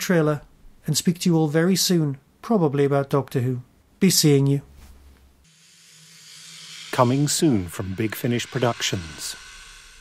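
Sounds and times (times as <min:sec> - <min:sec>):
hissing swell: 0:05.5 - 0:10.0
low steady drone: 0:05.5 - 0:10.0.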